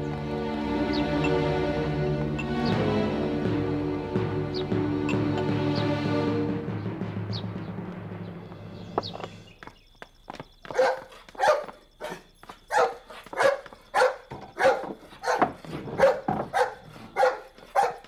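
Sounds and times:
drama music: 0:00.0 - 0:09.5
dog barking: 0:10.7 - 0:18.0.

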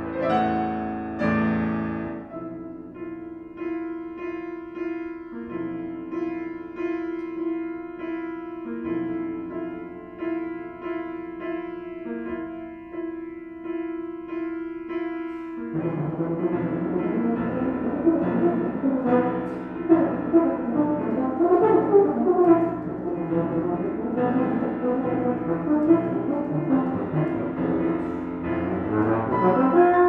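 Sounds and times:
grand piano: 0:00.0 - 0:30.0.

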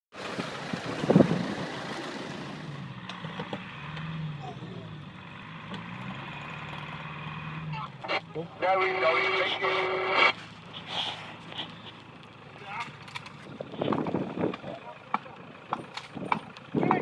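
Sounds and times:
engine revving: 0:00.2 - 0:17.0.

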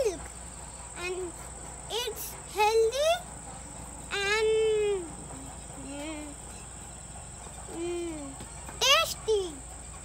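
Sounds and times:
insects droning: 0:00.0 - 0:10.0
young child's voice: 0:07.8 - 0:09.8.

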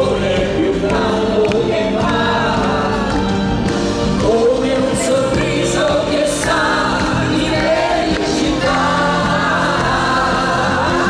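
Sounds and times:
live pop music with band: 0:00.0 - 0:11.0
voices singing together: 0:00.0 - 0:11.0.

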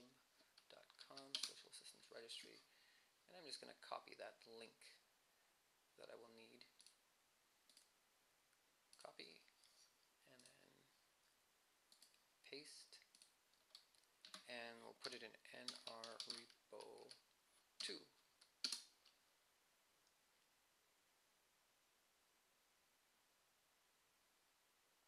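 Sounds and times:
keyboard keystrokes and clicks: 0:00.5 - 0:01.8, 0:13.0 - 0:17.2, 0:17.8 - 0:19.2.

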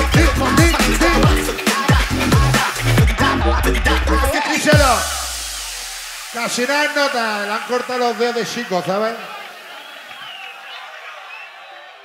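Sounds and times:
man's raised voice on microphone: 0:00.0 - 0:01.6, 0:04.4 - 0:05.3, 0:06.3 - 0:09.5
club dance music: 0:00.0 - 0:12.0
deep bass note and hiss: 0:04.8 - 0:07.7.

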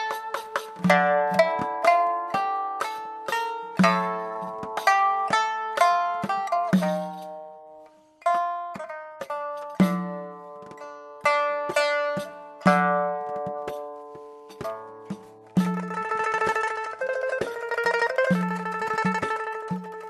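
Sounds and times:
plucked lute melody: 0:00.0 - 0:20.0.

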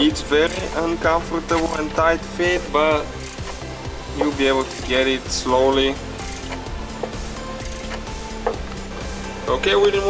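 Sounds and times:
ratchet metallic clicks: 0:00.4 - 0:00.8, 0:01.5 - 0:02.0, 0:03.2 - 0:03.6, 0:04.2 - 0:05.1, 0:06.1 - 0:06.7, 0:07.6 - 0:08.1.

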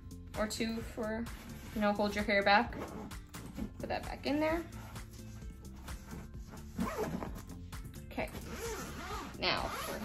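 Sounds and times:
quiet background music: 0:00.0 - 0:10.0
zipper being pulled closed: 0:02.6 - 0:03.7, 0:04.7 - 0:07.6, 0:08.3 - 0:10.0.

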